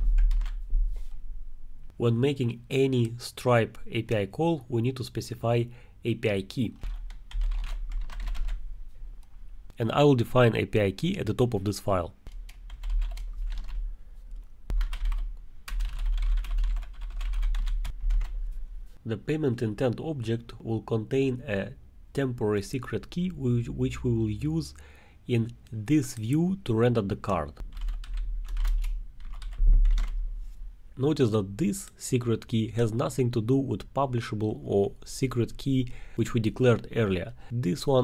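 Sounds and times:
typing on computer keyboard: 0.1 - 0.6, 6.8 - 8.6, 12.3 - 13.8, 14.7 - 18.3, 27.7 - 30.2.

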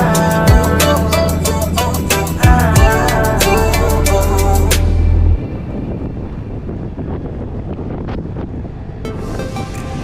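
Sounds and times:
bass-heavy music: 0.0 - 6.8, 9.0 - 10.0
wind rushing over microphone: 0.0 - 10.0.

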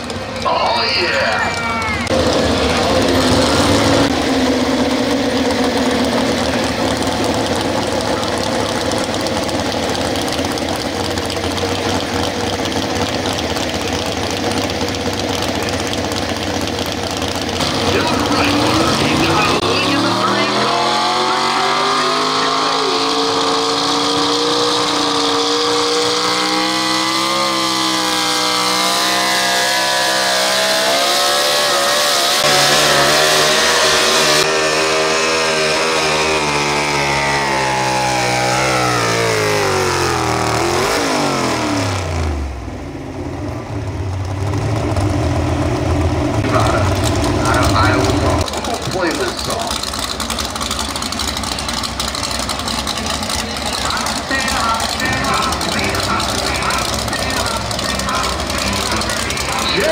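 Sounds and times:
truck engine revving hard: 0.0 - 59.9.

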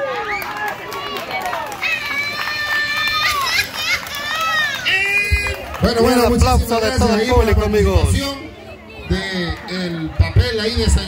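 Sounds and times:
man's voice: 5.8 - 8.5, 9.1 - 11.0.

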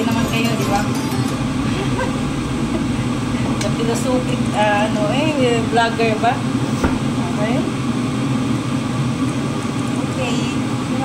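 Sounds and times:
range hood fan humming: 0.0 - 11.0.

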